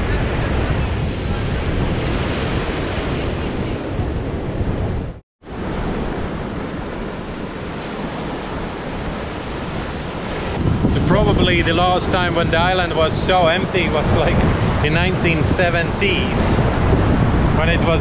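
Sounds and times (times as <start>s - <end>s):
wind buffeting microphone: 0.0s - 18.0s
small waves breaking on beach: 5.4s - 10.7s.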